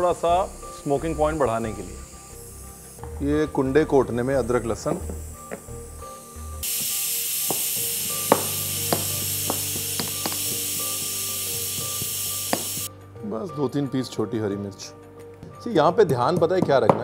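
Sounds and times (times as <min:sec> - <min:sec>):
steam hissing from pressure cooker: 0:00.0 - 0:12.9
background music: 0:00.0 - 0:17.0.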